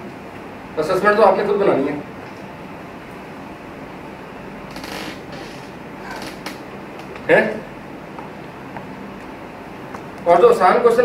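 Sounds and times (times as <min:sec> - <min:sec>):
room hiss: 0:00.0 - 0:11.0.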